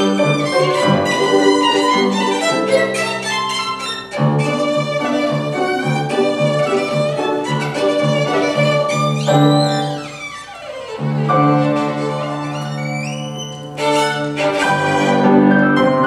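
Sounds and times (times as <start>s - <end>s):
violin: 0.0s - 16.0s.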